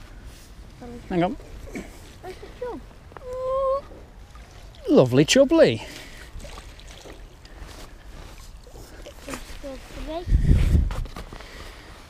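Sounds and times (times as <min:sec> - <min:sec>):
wind buffeting on microphone: 0:09.8 - 0:11.3.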